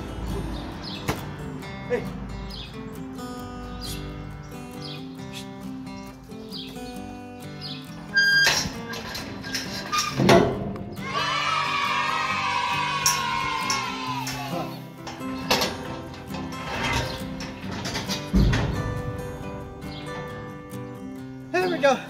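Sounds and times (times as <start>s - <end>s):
background music held notes: 0.0s - 22.0s.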